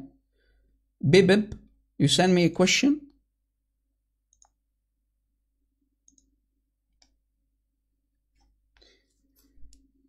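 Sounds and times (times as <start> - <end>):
faint room hum: 0.0 - 10.0.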